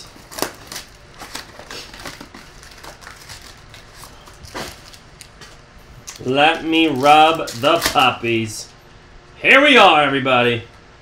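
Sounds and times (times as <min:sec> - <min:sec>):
trading cards clicking and rustling: 0:00.0 - 0:08.3.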